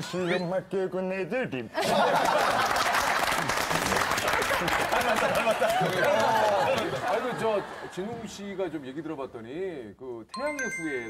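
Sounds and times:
people clapping: 0:01.8 - 0:08.0
people laughing: 0:01.8 - 0:09.2.

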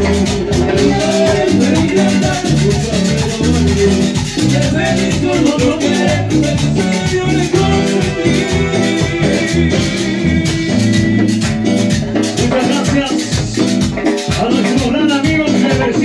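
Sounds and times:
amplified live cumbia band: 0:00.0 - 0:16.0
bass line: 0:00.0 - 0:16.0
percussion beat: 0:00.0 - 0:16.0.

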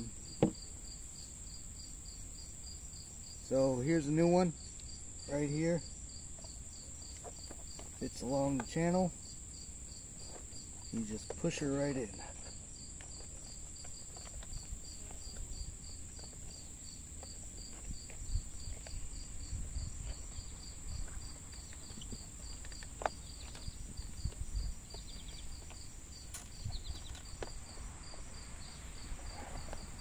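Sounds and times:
insects chirping: 0:00.0 - 0:30.0.

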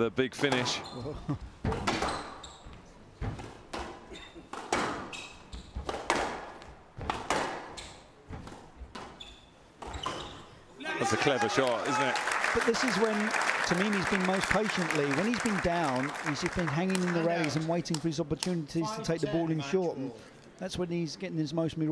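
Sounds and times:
court shoes squeaking: 0:00.4 - 0:10.8
squash ball hits: 0:01.6 - 0:02.3, 0:03.2 - 0:05.1, 0:05.8 - 0:09.1.

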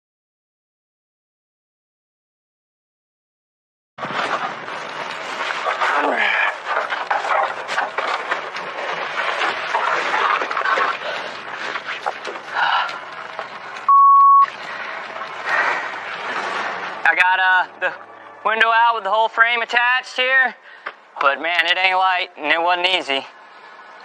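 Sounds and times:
censor bleep: 0:13.9 - 0:14.5.

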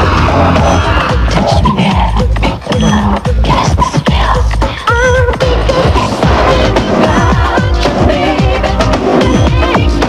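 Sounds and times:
wavering synth line: 0:00.0 - 0:03.3
eurodance techno music: 0:00.0 - 0:10.0
pounding kick drum: 0:00.0 - 0:10.0.

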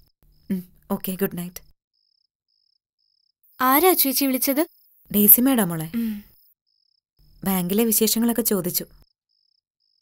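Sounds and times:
cricket chirping: 0:00.0 - 0:10.0
woman speaking: 0:00.5 - 0:01.7, 0:03.6 - 0:06.3, 0:07.4 - 0:09.0.

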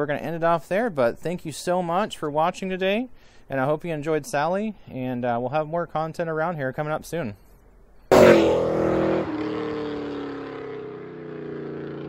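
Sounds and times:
car exhaust driving away: 0:08.1 - 0:12.0.

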